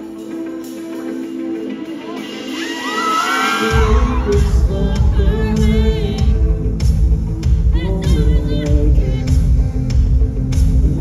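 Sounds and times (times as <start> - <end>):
crowd cheering: 2.5 - 6.3
bass and drums: 2.6 - 11.0.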